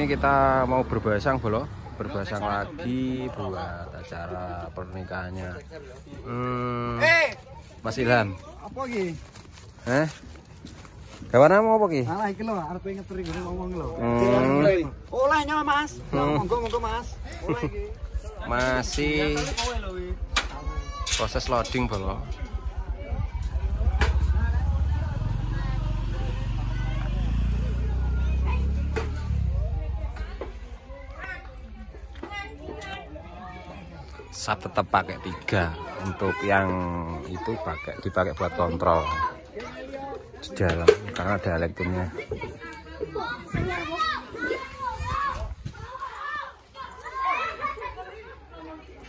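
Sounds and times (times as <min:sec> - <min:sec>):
children chattering and calling out: 0:00.0 - 0:49.0
faint voices: 0:00.0 - 0:49.0
engine rumbling at low revs: 0:17.8 - 0:30.9.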